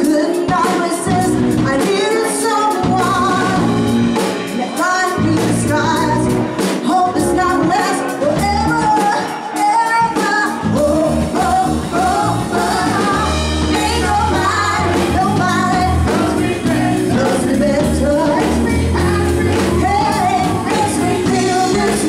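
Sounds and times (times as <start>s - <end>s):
live band playing funk: 0.0s - 22.0s
steady drum beat: 0.0s - 22.0s
woman singing lead: 0.0s - 22.0s.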